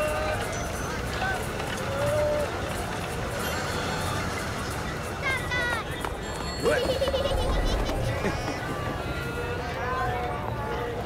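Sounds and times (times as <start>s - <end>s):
street background murmur: 0.0s - 11.0s.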